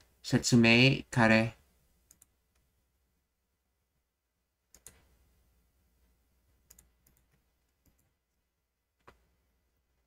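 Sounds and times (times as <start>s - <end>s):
computer mouse clicks: 2.0s - 2.7s, 4.7s - 5.1s, 6.6s - 8.2s.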